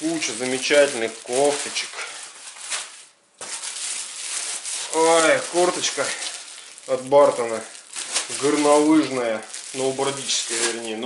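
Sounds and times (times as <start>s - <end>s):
plastic bag crackling and rustling: 0.0s - 11.0s.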